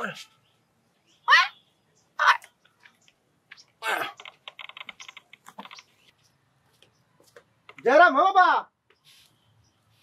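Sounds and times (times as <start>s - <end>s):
short clipped vocal sounds: 3.8s - 4.5s.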